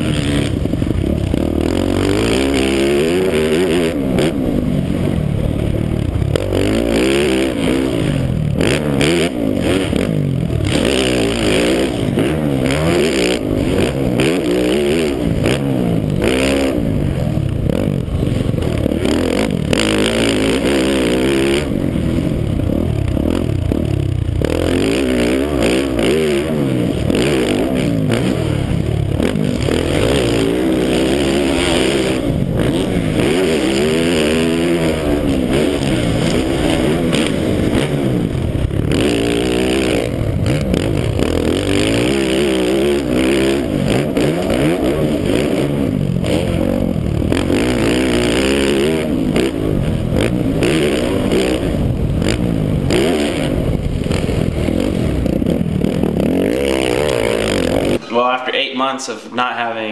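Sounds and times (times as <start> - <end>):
motocross engine revving: 0.0 - 59.9.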